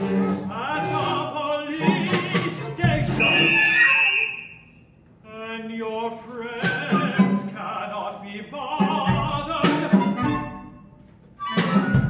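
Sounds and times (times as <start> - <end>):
high held instrumental note: 0.1 - 1.3
sung phrase: 0.8 - 2.1.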